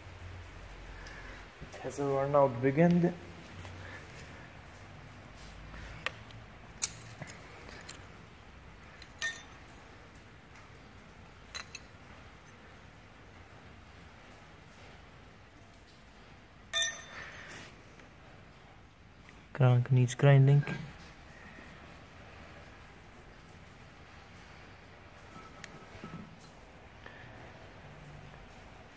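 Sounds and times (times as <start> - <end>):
metallic clinks and taps: 9.0 - 9.7, 11.5 - 12.6, 16.7 - 17.6.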